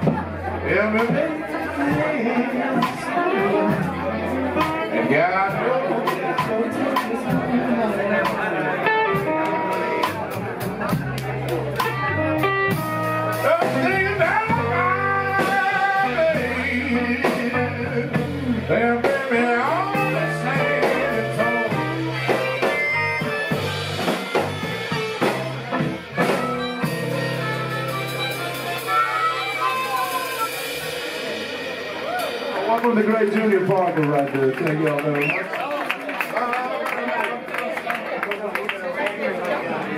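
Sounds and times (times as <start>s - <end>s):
live electric blues band: 0.0s - 39.9s.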